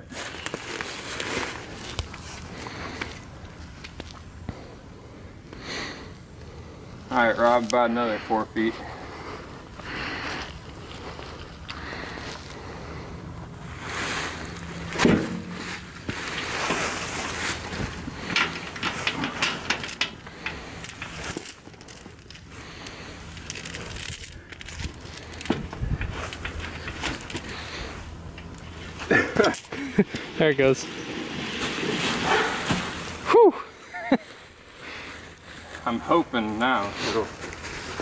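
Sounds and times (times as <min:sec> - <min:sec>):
chain clinking and rattling: 0:17.6 - 0:32.1.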